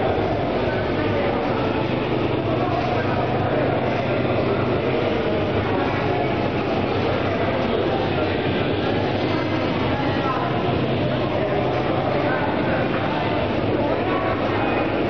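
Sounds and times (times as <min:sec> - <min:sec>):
flight simulator drive humming: 0:00.0 - 0:15.0.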